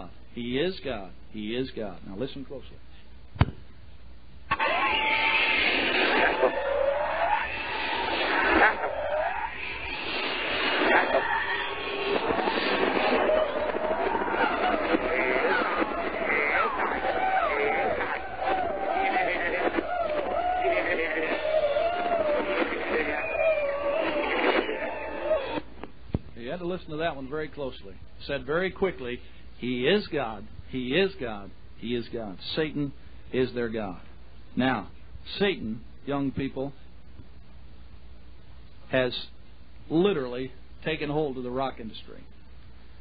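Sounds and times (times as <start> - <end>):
screaming: 4.5 - 25.7.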